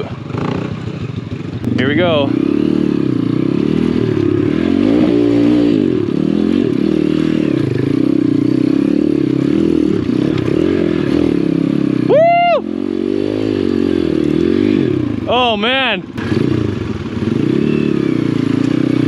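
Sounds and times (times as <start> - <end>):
high rising-and-falling whoop: 12.0 - 12.8.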